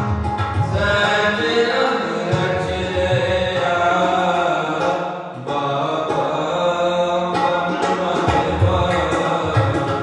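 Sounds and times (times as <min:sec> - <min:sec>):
tabla strokes: 0:00.0 - 0:10.0
man chanting: 0:00.6 - 0:10.0.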